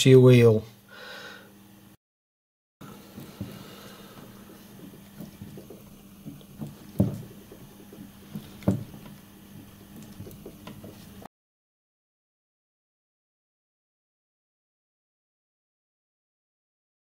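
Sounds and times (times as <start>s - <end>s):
steady low hum: 2.8s - 11.3s
light clicks and knocks: 4.8s - 9.2s.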